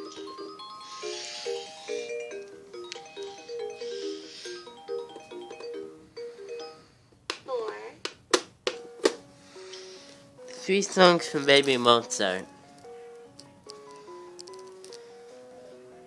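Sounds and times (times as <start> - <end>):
toy piano electronic melody: 0.0 - 6.9, 8.8 - 16.0
toy keys clicking: 12.8 - 15.0.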